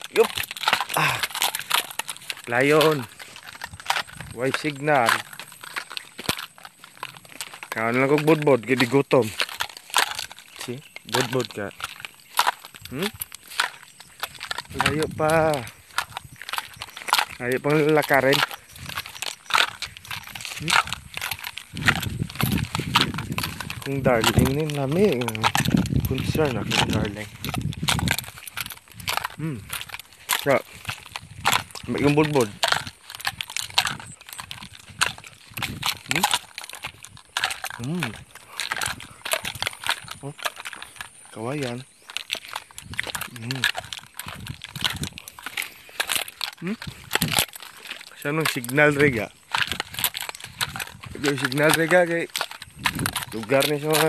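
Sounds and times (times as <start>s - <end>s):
dry grass crackling underfoot: 0.0s - 54.0s
scattered clicks: 0.0s - 54.0s.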